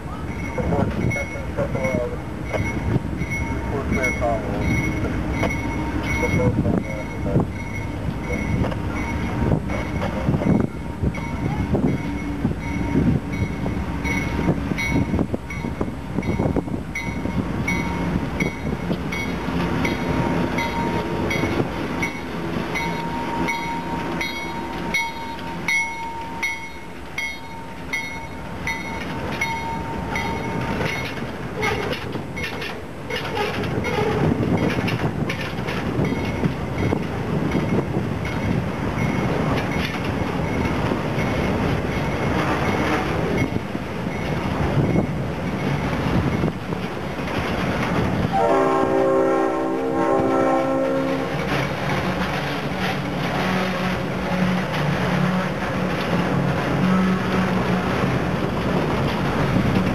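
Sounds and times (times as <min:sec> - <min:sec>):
diesel locomotive engine passing: 0:00.0 - 0:59.9
train wheels clicking on rail joints: 0:00.2 - 0:49.0, 0:50.0 - 0:59.9.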